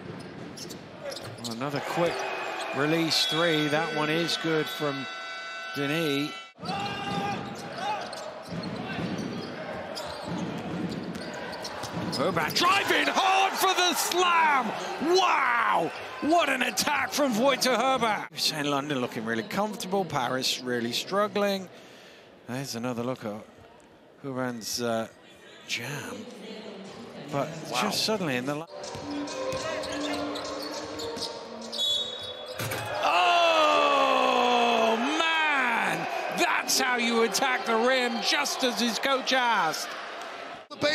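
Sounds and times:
crowd noise: 0.0s - 21.9s, 25.3s - 40.9s
sneaker squeak: 0.1s - 2.8s, 6.6s - 12.6s, 28.7s - 32.9s
basketball bouncing on court: 6.8s - 12.6s.

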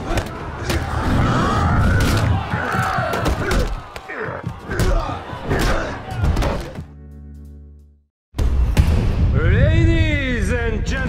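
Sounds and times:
trailer music: 6.1s - 9.9s.

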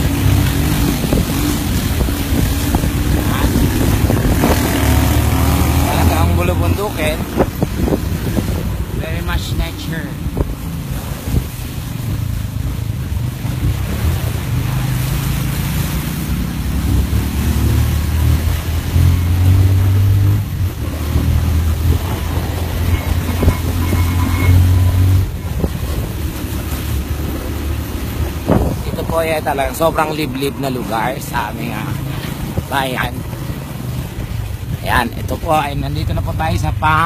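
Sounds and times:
wind buffeting microphone: 0.0s - 14.6s, 16.2s - 37.0s.

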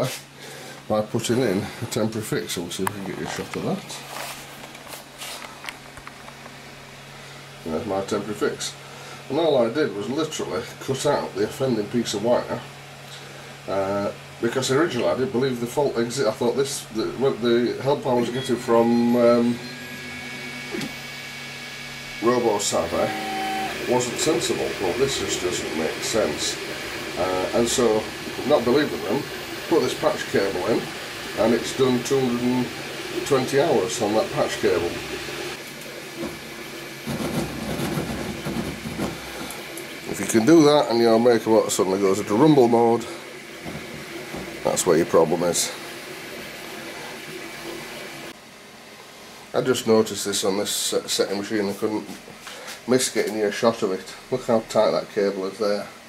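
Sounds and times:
printer motors humming: 7.6s - 48.4s.

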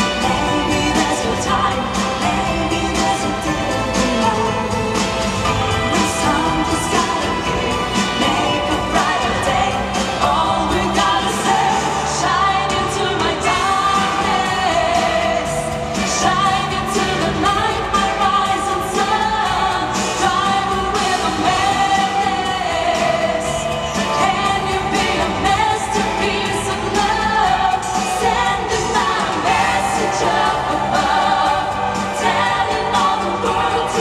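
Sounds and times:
backing track music: 0.0s - 34.0s
women singing pop ballad: 0.0s - 34.0s.

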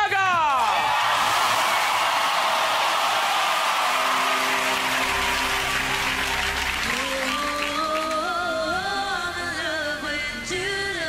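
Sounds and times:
audience clapping and cheering: 0.4s - 8.6s
person singing: 6.7s - 11.0s.

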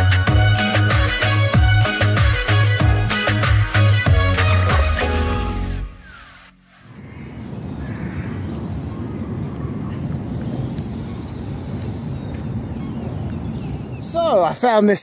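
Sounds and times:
birds calling faintly: 6.0s - 15.0s
wind on microphone: 6.8s - 14.2s.

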